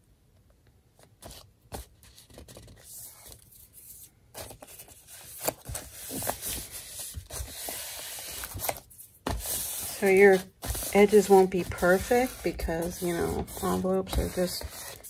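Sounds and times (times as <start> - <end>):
paper rustling and scraping: 1.2 - 15.0.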